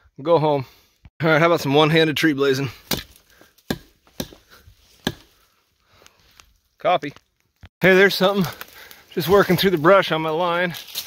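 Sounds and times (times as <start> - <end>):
axe chopping into tree trunk: 2.8 - 5.4.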